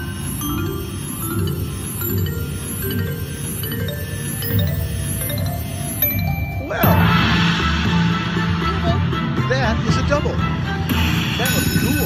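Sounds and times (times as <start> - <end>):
slot machine jingling tones: 0.0 - 7.2, 11.4 - 12.0.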